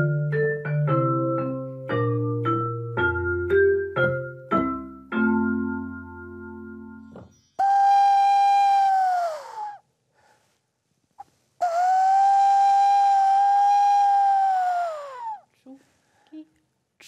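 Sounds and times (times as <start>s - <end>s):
hand whistle hooting: 7.6s - 9.8s, 11.6s - 15.4s.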